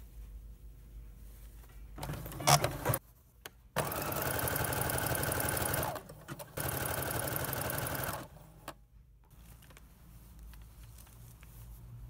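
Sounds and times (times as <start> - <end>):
sewing machine stitching: 2.0 - 3.0, 3.8 - 8.4.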